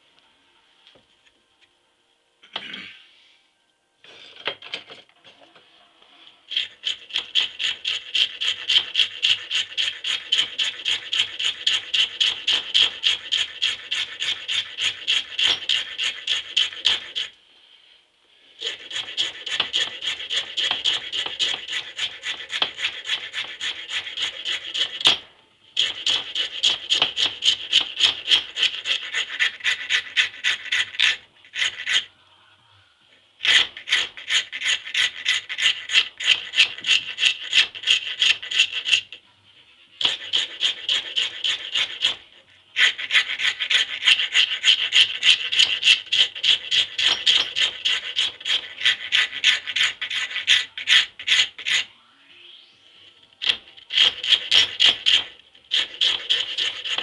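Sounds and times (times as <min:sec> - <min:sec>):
hand file rasping on wood: 0:06.5 - 0:17.3, 0:18.6 - 0:25.2, 0:25.8 - 0:32.1, 0:33.4 - 0:39.2, 0:40.0 - 0:51.9, 0:53.4 - 0:57.0.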